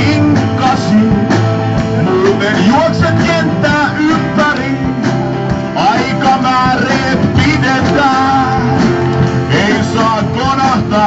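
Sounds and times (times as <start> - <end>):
man singing: 0.0 - 11.0.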